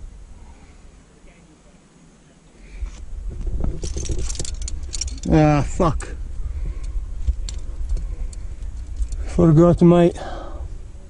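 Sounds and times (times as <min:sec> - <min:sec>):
climbing gear clinking: 0:03.6 - 0:05.4, 0:06.8 - 0:09.4.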